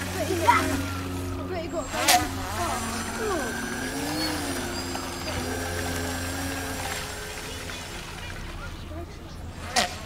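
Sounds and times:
model boat motor whining: 0:00.0 - 0:10.0.

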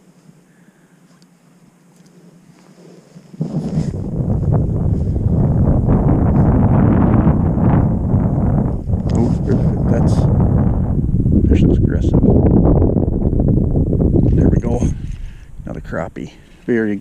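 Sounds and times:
wind buffeting microphone: 0:03.4 - 0:17.0.

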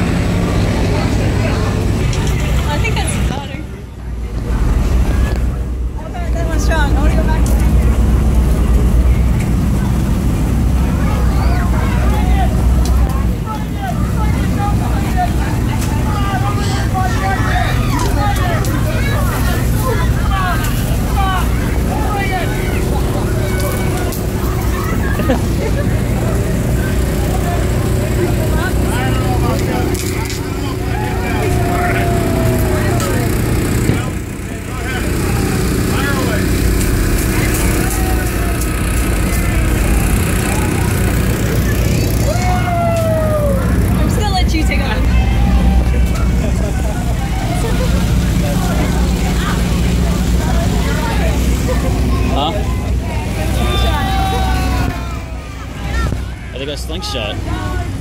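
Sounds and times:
boat engine humming: 0:00.0 - 0:58.0
people talking: 0:00.0 - 0:58.0
people shouting: 0:10.8 - 0:44.1, 0:44.7 - 0:58.0.

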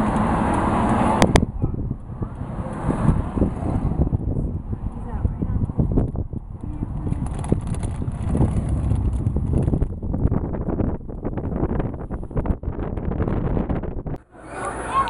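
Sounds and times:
wind buffeting microphone: 0:00.0 - 0:14.2.

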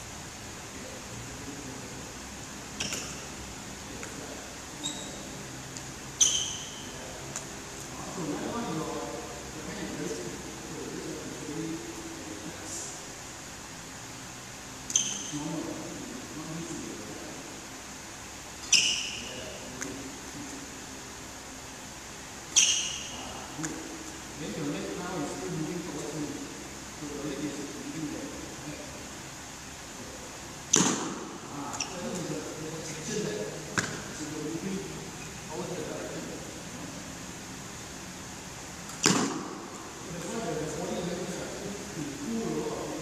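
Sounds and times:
racket striking shuttlecock: 0:30.7 - 0:31.4, 0:38.9 - 0:39.7.

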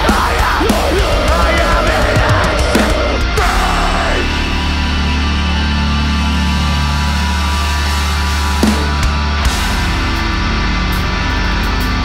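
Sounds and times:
low guitar and bass drone: 0:00.0 - 0:12.0.

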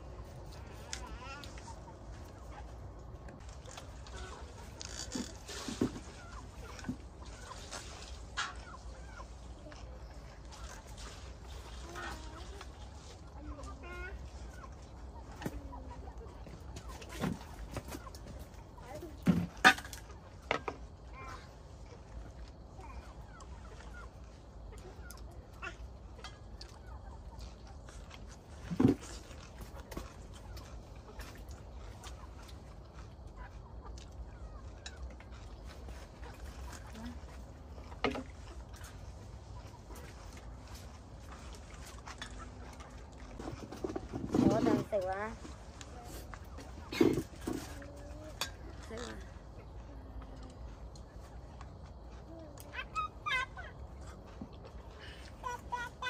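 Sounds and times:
chicken clucking: 0:00.0 - 0:56.0
low steady hum: 0:00.0 - 0:56.0.

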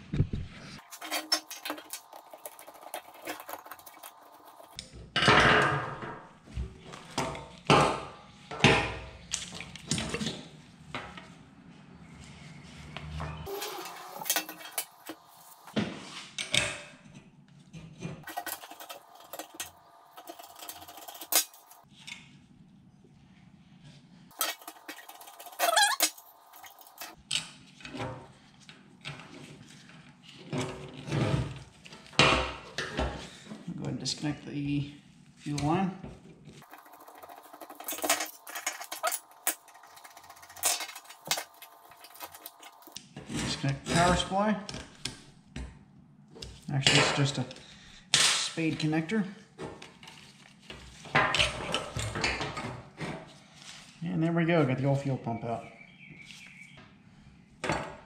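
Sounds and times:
metal parts clinking and clanking: 0:00.8 - 0:04.8, 0:13.5 - 0:15.6, 0:18.2 - 0:21.8, 0:24.3 - 0:27.5, 0:36.6 - 0:43.0.

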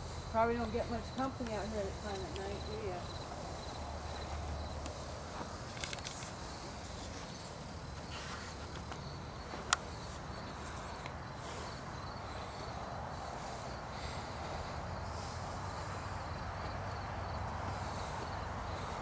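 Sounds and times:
crickets chirping: 0:00.0 - 0:19.0.

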